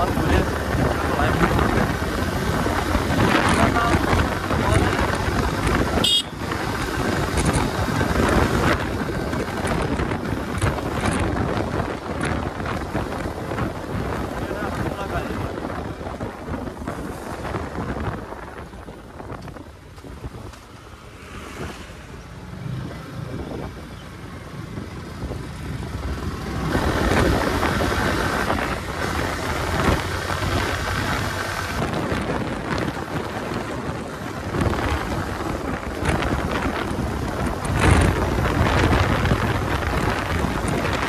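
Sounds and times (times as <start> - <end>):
motorcycle engine: 0.0 - 41.0
road noise: 0.0 - 41.0
wind rushing over microphone: 0.0 - 41.0.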